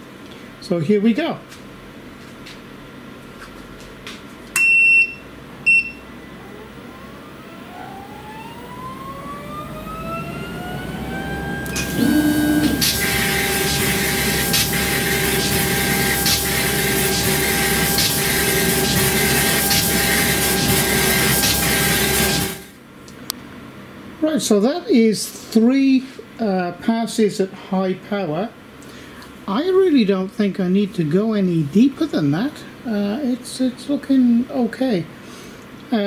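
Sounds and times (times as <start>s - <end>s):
short machine beeps: 4.6s - 6.1s
steady machine hum: 5.0s - 23.0s
machine whine spinning up: 6.0s - 22.8s
loud rush of air: 10.5s - 22.7s.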